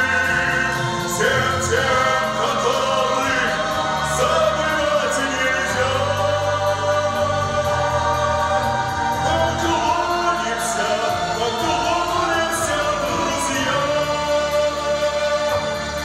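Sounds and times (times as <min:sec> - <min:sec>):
man singing into microphone: 0:00.0 - 0:07.4, 0:09.2 - 0:15.7
choir singing: 0:00.0 - 0:16.0
instrumental accompaniment: 0:00.0 - 0:16.0.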